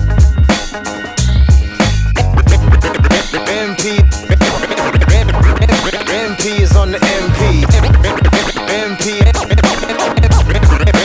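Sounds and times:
hip-hop beat with hard kick drums: 0.0 - 11.0.

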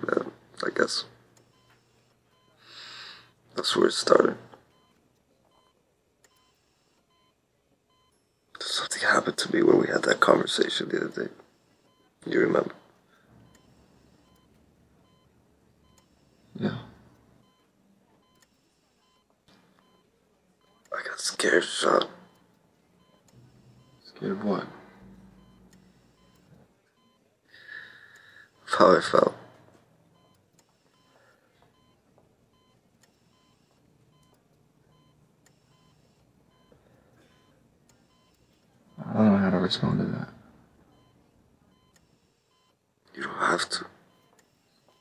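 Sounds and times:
patient monitor beeps: 0.0 - 45.0.

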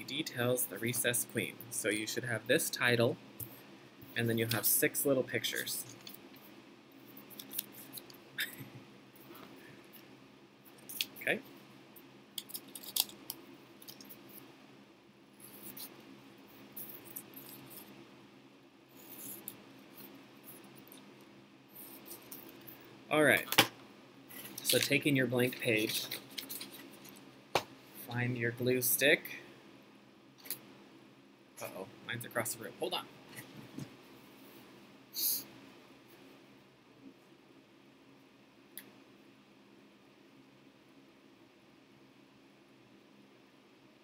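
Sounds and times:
paper rustling: 7.1 - 8.1, 12.4 - 13.2, 24.3 - 27.2.

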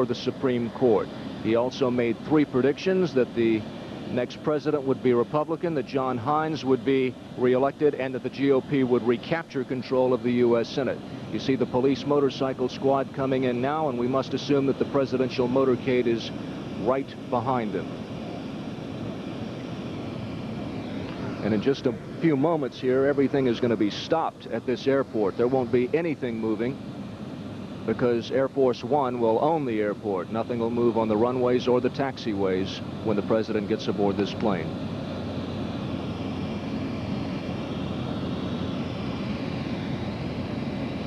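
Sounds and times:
engine rumble: 0.0 - 41.0.

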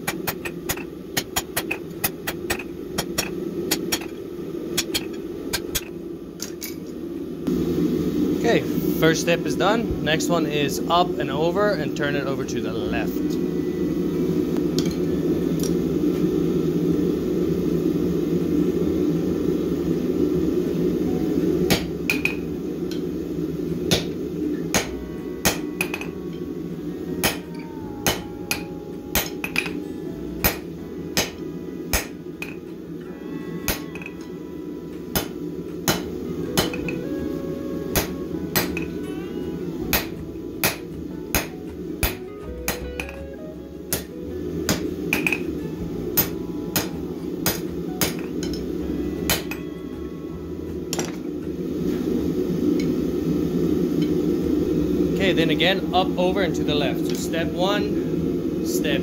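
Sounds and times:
hammer striking steel on anvil: 0.0 - 4.2, 4.8 - 5.9, 21.7 - 23.0, 23.9 - 26.1, 27.2 - 29.8, 30.4 - 32.7, 33.7 - 34.3, 35.1 - 37.0, 37.9 - 39.0, 39.9 - 43.3, 43.9 - 45.5, 46.2 - 48.6, 49.3 - 49.7, 50.9 - 51.3
steady low rumble: 0.0 - 59.0.

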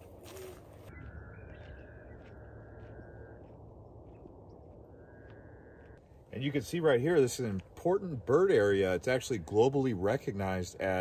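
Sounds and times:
owl trilling: 0.2 - 3.4
faint outdoor hiss: 3.7 - 11.0.

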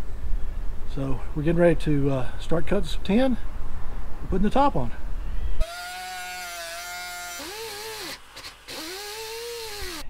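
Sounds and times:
air shears cutting metal sheet: 5.6 - 10.0.

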